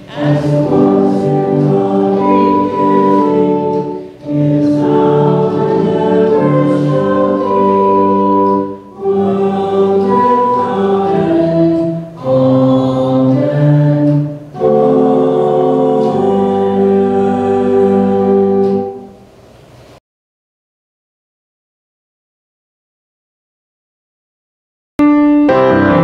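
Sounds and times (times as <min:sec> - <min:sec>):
congregation singing a hymn: 0:00.0 - 0:19.2.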